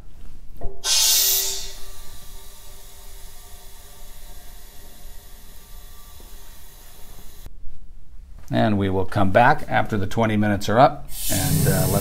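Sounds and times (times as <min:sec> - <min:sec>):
compressed air hissing: 0:00.8 - 0:06.5, 0:11.1 - 0:12.0.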